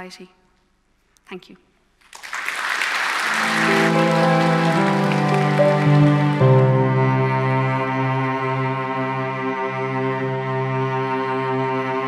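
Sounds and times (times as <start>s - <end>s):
audience applause: 2.1s - 7.3s
slow string music: 3.2s - 12.0s.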